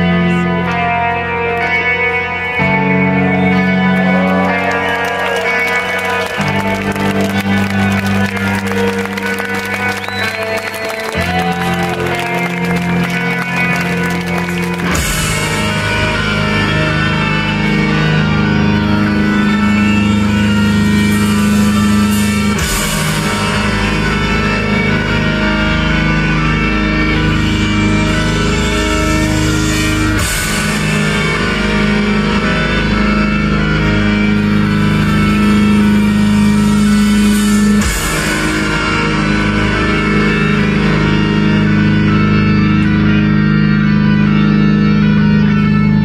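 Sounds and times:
distorted electric guitars droning: 0.0s - 46.0s
live heavy metal band: 0.0s - 46.0s.

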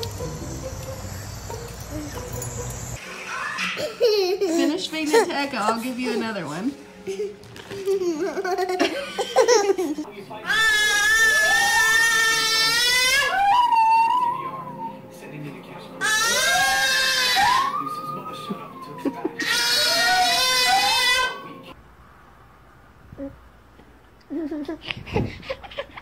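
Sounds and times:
baby crying: 10.4s - 15.0s, 16.0s - 21.5s.

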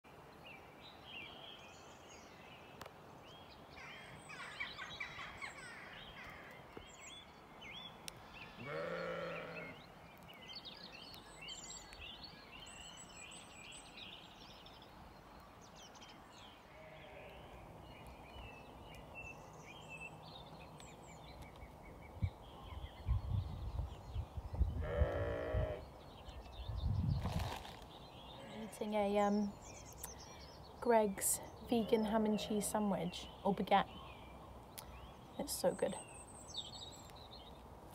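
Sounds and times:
small birds chirping: 0.1s - 37.9s
sheep bleating: 8.6s - 9.8s.

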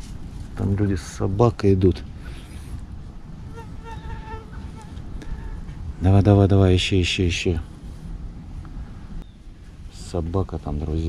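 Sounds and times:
mosquito whine: 3.4s - 5.7s.

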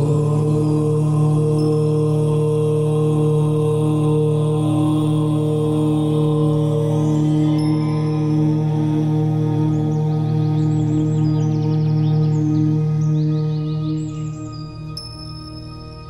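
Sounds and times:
long om chanted on one pitch: 0.0s - 15.0s.

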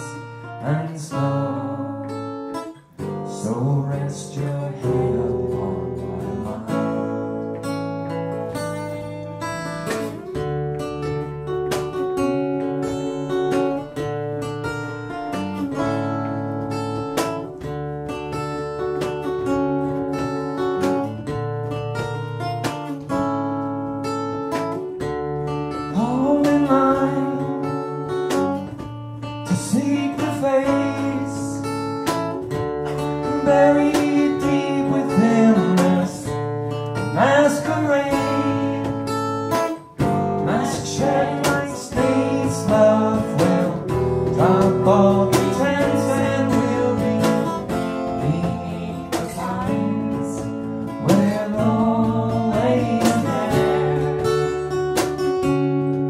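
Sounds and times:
acoustic guitar strumming: 0.0s - 56.0s
person singing: 3.3s - 7.0s, 29.5s - 31.7s, 33.2s - 36.4s, 37.0s - 39.2s, 40.0s - 54.7s.

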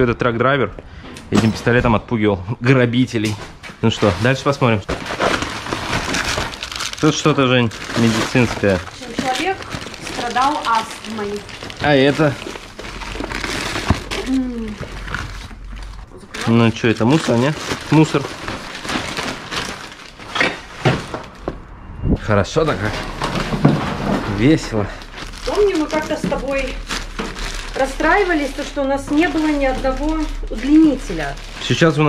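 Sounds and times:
items clattering together: 3.2s - 21.6s, 22.8s - 32.0s
plastic packets crinkling: 3.8s - 21.4s, 22.8s - 32.0s
tote bag rustling: 5.1s - 21.4s, 23.0s - 32.0s.

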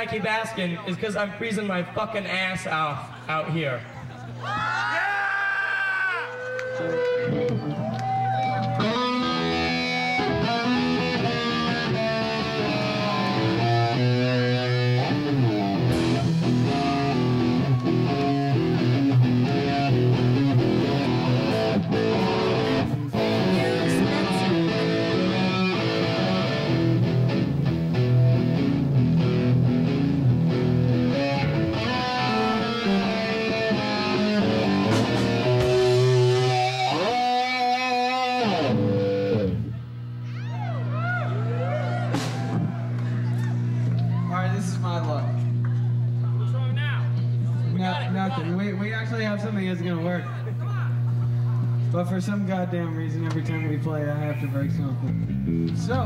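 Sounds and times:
electric guitar notes and chords: 6.5s - 47.8s, 52.9s - 56.0s
gliding wavering guitar tones: 6.8s - 46.4s
steady low drone: 8.6s - 47.7s.

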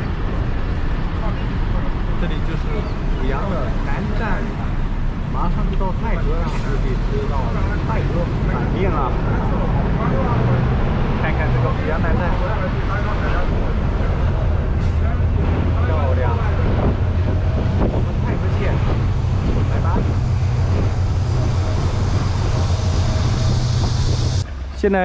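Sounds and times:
passengers' voices: 0.0s - 24.8s
bus engine drone: 0.0s - 25.0s.

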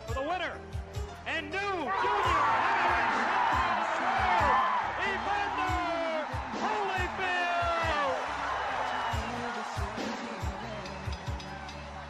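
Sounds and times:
voices shouting in celebration: 1.8s - 10.7s
music with steady low beat: 2.1s - 12.0s.

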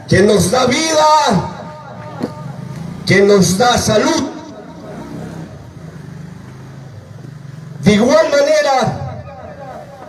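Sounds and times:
vehicle engine running: 1.4s - 8.3s.

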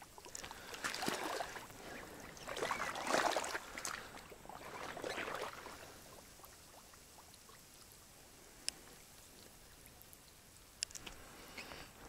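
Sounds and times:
faint water drips: 0.0s - 12.0s.

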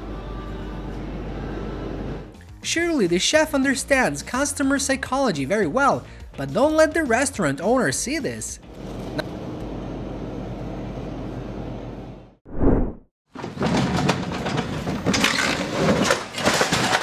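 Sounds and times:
pallet jack and sacks crashing: 13.3s - 17.0s.

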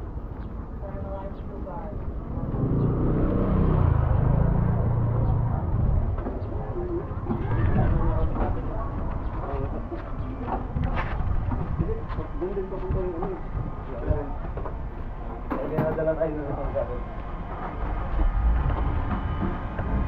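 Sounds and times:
voices talking: 0.7s - 18.1s
wind noise on microphone: 5.3s - 15.5s.

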